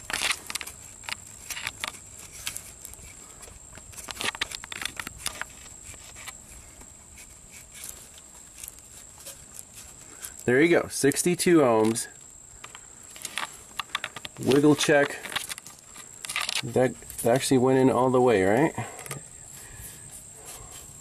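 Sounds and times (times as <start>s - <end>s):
faint high whine: 0.0s - 21.0s
plastic connector clicks and rustles: 12.6s - 16.7s.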